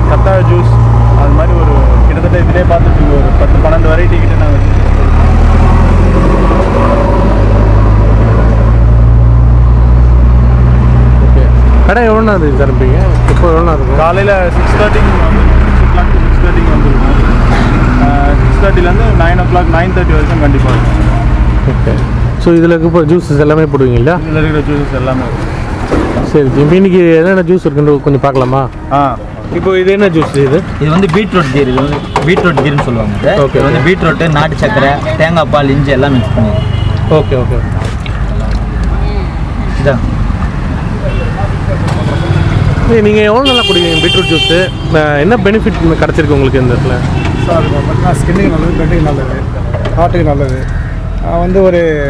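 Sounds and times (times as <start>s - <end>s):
street traffic rumble: 0.0s - 52.0s.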